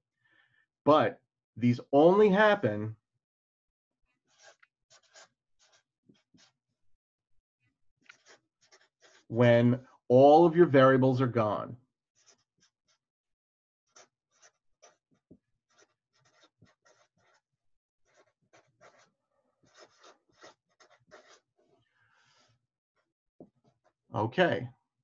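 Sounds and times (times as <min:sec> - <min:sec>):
marker writing on paper: 0:04.3 - 0:06.6, 0:08.0 - 0:09.3, 0:12.2 - 0:13.1, 0:13.9 - 0:22.6.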